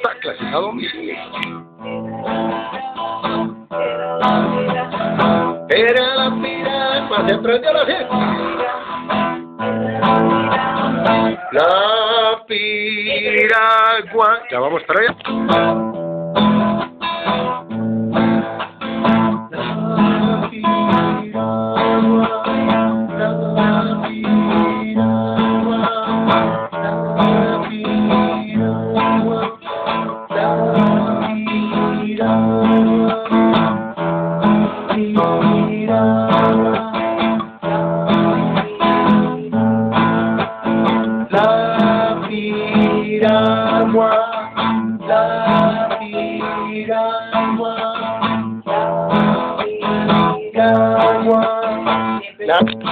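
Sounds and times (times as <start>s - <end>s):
acoustic guitar strumming: 0.0s - 52.9s.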